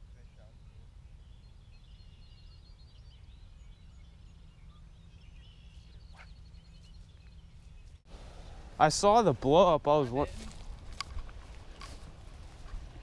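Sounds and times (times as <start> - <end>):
faint birds chirping: 0.0 - 10.7.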